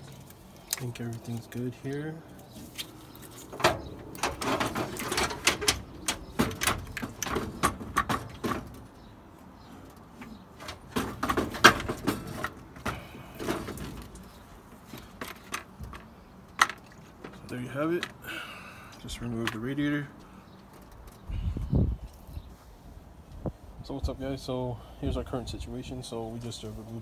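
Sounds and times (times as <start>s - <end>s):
plastic clunks and scrapes: 3.4s - 8.8s.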